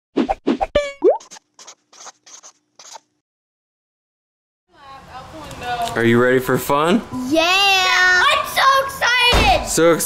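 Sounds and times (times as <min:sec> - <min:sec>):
cartoon plops: 0:00.6 - 0:01.7.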